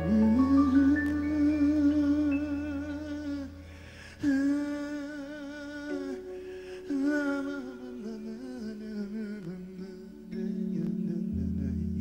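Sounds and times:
man singing long wordless notes: 0:00.0 - 0:12.0.

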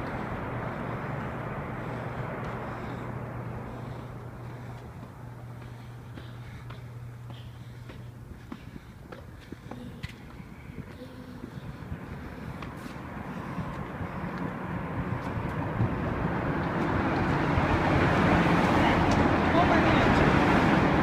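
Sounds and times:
car approaching in underpass: 0:00.0 - 0:21.0.

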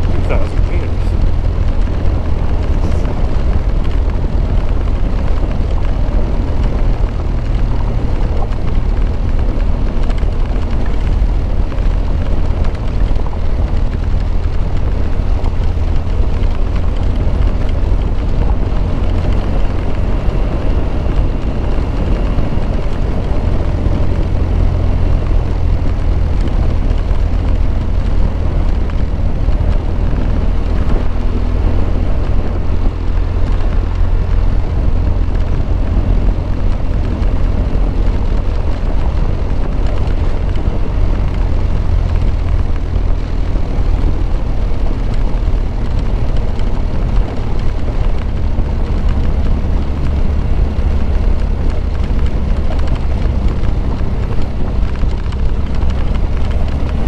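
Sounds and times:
motorcycle engine running: 0:00.0 - 0:57.0
tyres on gravel road: 0:00.0 - 0:57.0.

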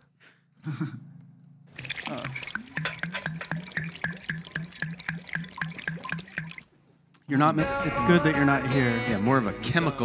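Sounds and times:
soda fizz crackling: 0:01.8 - 0:06.7
sipping soda from cans: 0:01.8 - 0:07.3.

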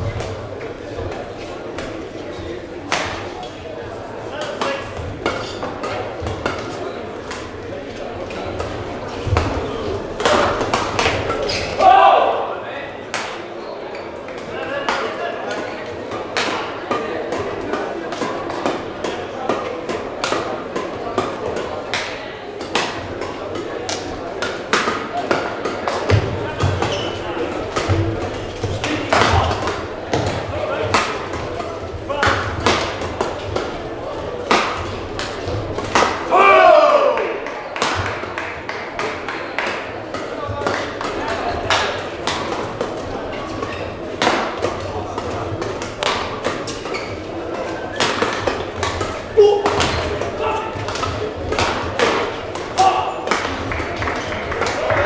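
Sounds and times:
voices: 0:00.0 - 0:55.0
rackets striking shuttlecock: 0:14.8 - 0:36.3, 0:37.8 - 0:47.1, 0:47.8 - 0:55.0.

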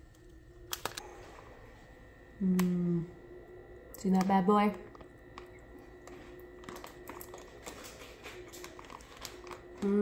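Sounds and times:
chewing crunchy chips: 0:04.8 - 0:10.0.

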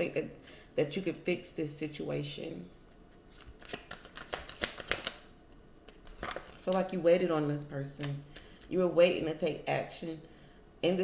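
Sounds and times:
cards shuffling: 0:02.9 - 0:05.3, 0:05.9 - 0:07.0.

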